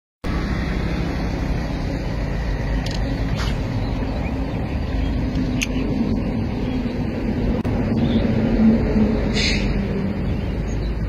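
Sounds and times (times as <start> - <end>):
low rumbling background noise: 0.3 - 11.0.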